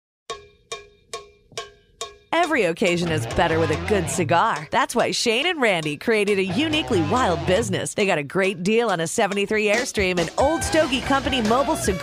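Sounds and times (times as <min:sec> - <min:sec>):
pitched percussion hits ringing: 0:00.3 - 0:07.8.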